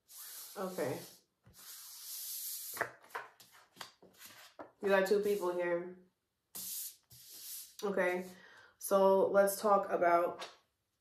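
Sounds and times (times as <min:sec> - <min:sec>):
cards sliding on tabletop: 0:00.0 - 0:05.4, 0:06.6 - 0:08.3.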